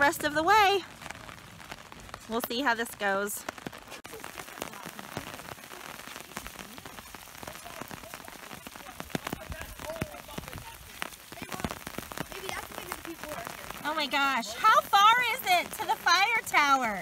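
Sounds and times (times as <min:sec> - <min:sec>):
rain drops hitting umbrella: 0:00.0 - 0:17.0
steady rain hiss: 0:00.0 - 0:17.0.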